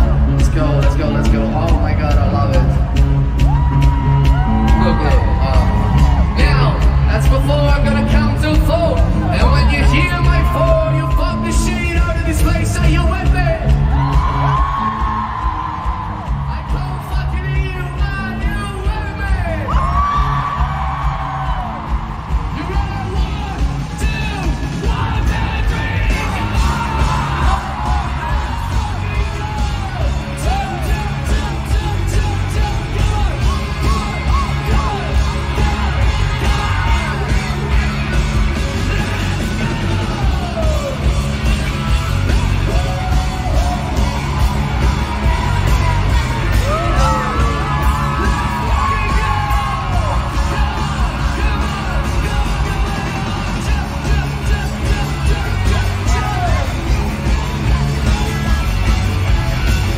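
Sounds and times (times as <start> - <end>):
crowd yelling and singing along: 0.0 - 59.9
live rock band playing: 0.0 - 59.9.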